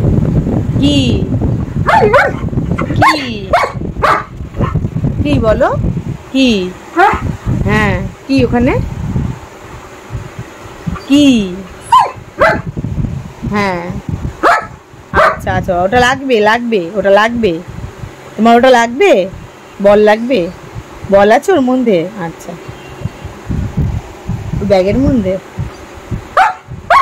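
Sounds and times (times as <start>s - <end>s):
woman speaking: 0.8s - 2.3s, 2.9s - 3.8s, 5.2s - 7.0s, 7.6s - 8.9s, 11.0s - 11.8s, 13.5s - 14.1s, 15.2s - 17.7s, 18.4s - 22.8s, 24.6s - 25.7s
dog whining and yipping: 1.9s - 4.8s, 7.0s - 7.3s, 11.8s - 12.7s.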